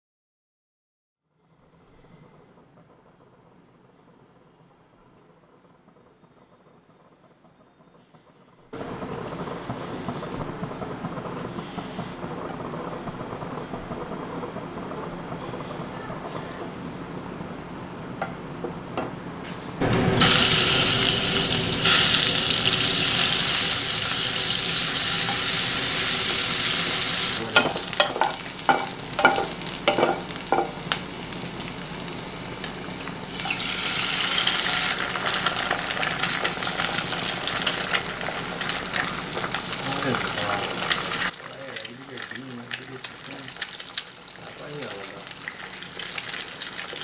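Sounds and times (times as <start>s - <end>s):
chicken sizzling in hot oil: 8.8s - 14.0s, 19.8s - 47.0s.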